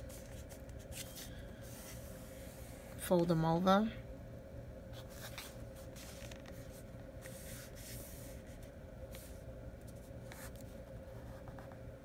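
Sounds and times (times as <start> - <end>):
paper rustling and rubbing: 0.0 - 3.0, 4.9 - 11.8
steady background hum: 0.0 - 12.0.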